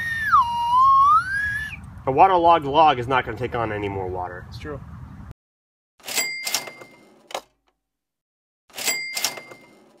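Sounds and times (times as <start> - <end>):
cash register ka-ching: 6.0 - 7.5, 8.7 - 10.0.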